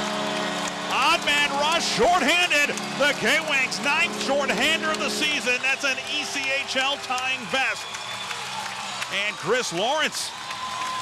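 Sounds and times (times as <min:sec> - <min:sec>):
held chord: 0:00.0 - 0:07.5
arena crowd noise: 0:00.0 - 0:11.0
man commentating excitedly: 0:00.9 - 0:07.9, 0:09.1 - 0:10.3.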